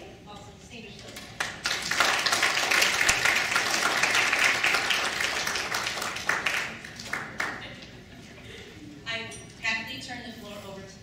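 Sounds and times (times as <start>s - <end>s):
audience applauding: 1.4s - 7.8s.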